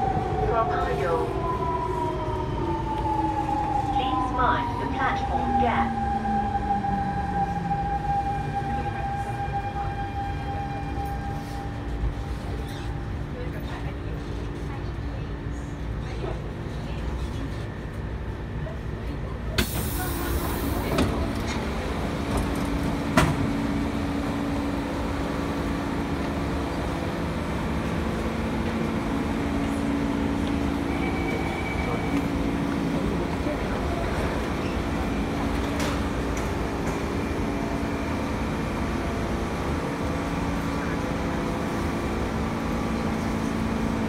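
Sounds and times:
train doors opening hiss: 19.6 - 21.7.

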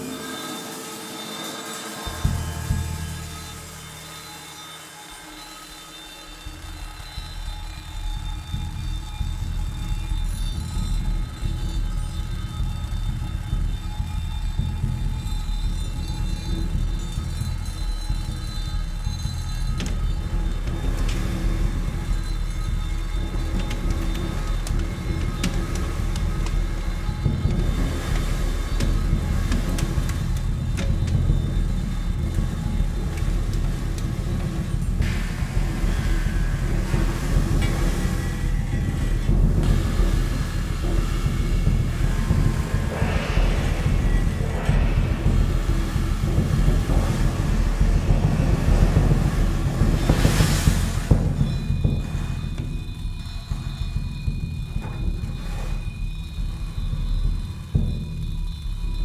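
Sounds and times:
ringing cymbal tones: 0.0 - 59.0
low drum rumble from mallet: 7.5 - 59.0.

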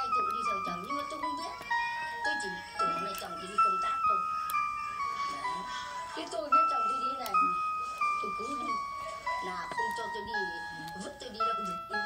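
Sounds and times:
person talking: 0.0 - 4.5, 5.2 - 12.0.

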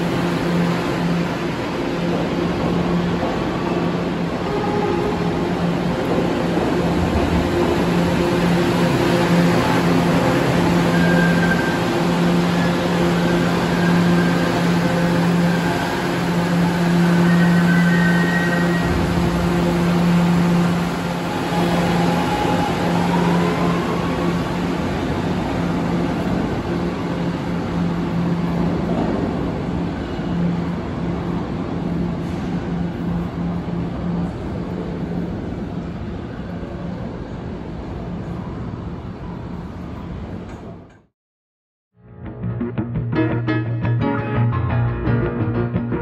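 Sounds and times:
subway train wheels on track: 0.0 - 41.1.

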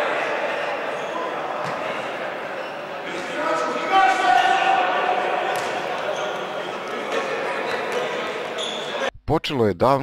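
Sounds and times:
hubbub of sports hall: 0.0 - 9.1.

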